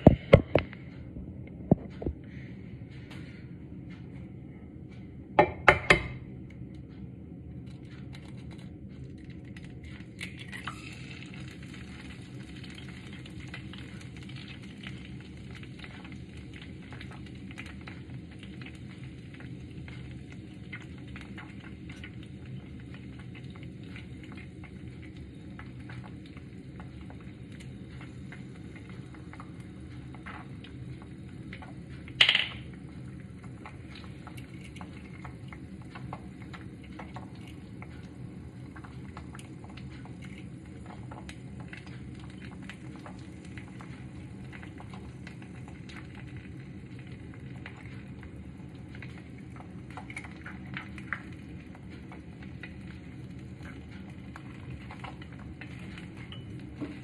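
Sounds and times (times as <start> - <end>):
egg sizzling in a frying pan: 7.6 - 57.0.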